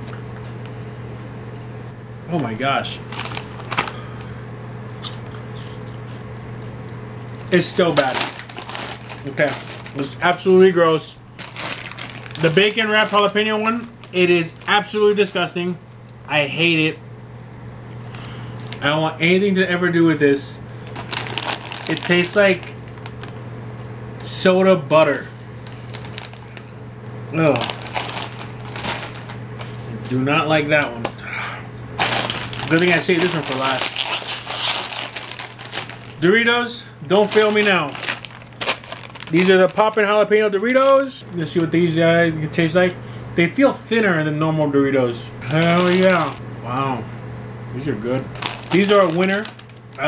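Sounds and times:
potato chips crunching: 3.0 - 4.2, 7.7 - 10.5, 11.4 - 15.2, 20.8 - 23.4, 25.6 - 29.4, 32.0 - 36.4, 37.1 - 41.1, 45.4 - 46.5, 48.3 - 50.0.

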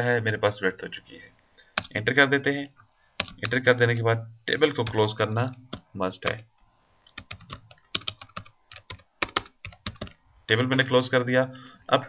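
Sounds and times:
typing on computer keyboard: 1.8 - 2.0, 3.2 - 3.6, 7.1 - 10.2.

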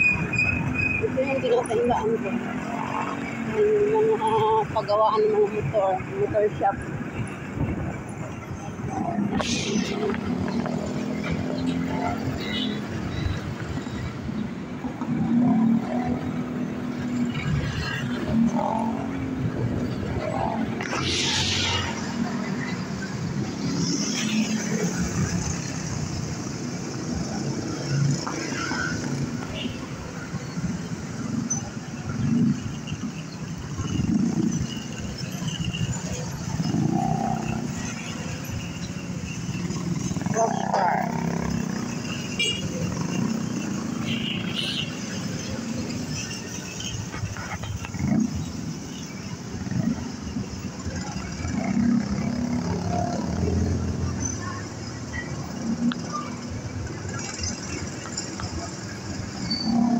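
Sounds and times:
street traffic noise: 0.0 - 59.9.

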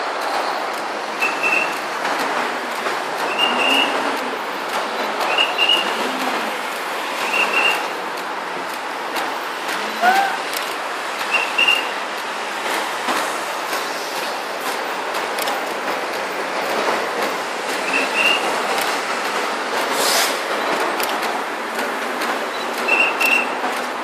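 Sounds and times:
road traffic: 0.0 - 24.0
high double chirps: 10.0 - 10.5
brief hiss: 20.0 - 20.4.

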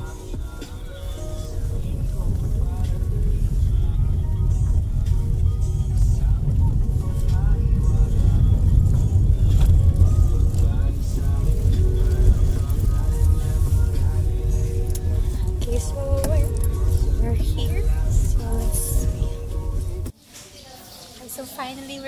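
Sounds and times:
car road and engine rumble: 0.0 - 20.1
background music: 0.0 - 20.2.

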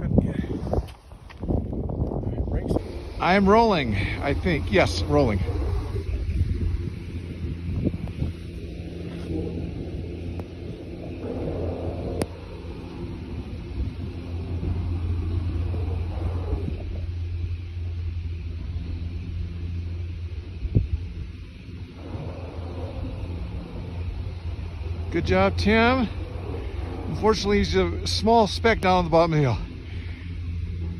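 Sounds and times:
low rumble: 0.0 - 30.9
wind on microphone: 0.0 - 30.9.

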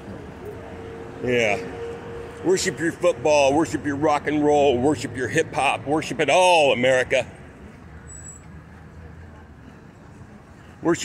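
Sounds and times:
traffic and engines hum: 0.0 - 11.0.

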